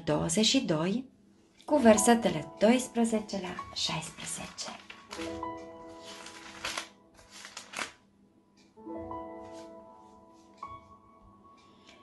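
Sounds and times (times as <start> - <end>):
faint background music: 0.0 - 12.0
book pages turning: 3.5 - 8.0.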